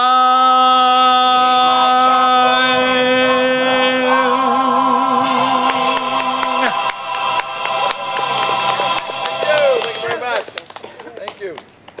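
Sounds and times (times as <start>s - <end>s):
instrumental backing track: 4.1s - 10.4s.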